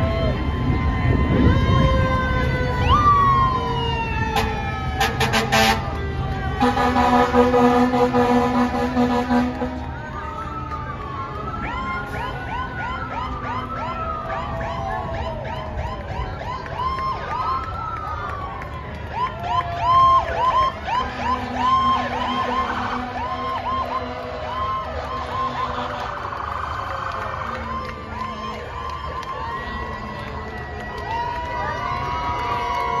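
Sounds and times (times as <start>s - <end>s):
crowd noise: 0.0s - 33.0s
fire truck sirens wailing: 0.0s - 33.0s
air horn blasts: 4.3s - 6.0s, 6.6s - 9.9s, 21.0s - 24.6s.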